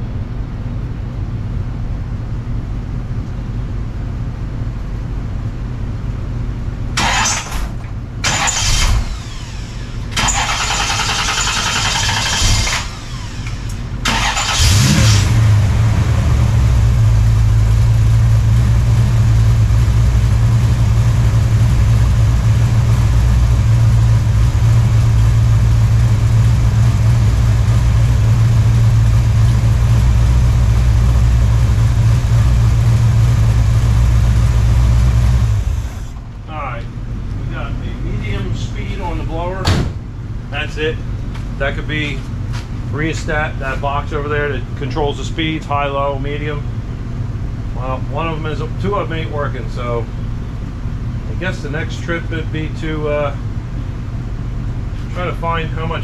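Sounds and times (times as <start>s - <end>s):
car engine starting and idling: 6.9s - 56.0s
starter rushes of noise: 8.2s - 16.6s.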